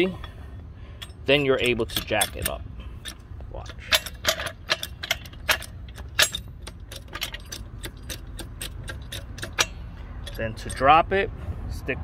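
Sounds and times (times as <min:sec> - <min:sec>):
jack pump metallic clicking: 0:00.0 - 0:11.1.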